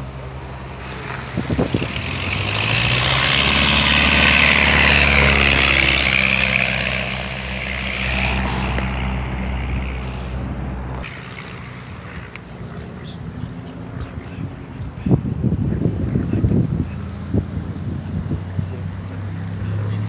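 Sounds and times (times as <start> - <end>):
biplane engine passing low: 0.0 - 20.0.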